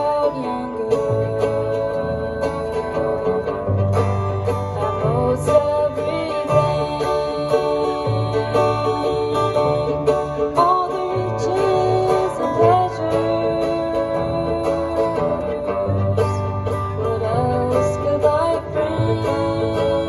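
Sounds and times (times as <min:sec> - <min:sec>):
fiddle melody: 0:00.0 - 0:20.0
strummed acoustic guitar: 0:00.0 - 0:20.0
upright bass walking: 0:00.0 - 0:20.0.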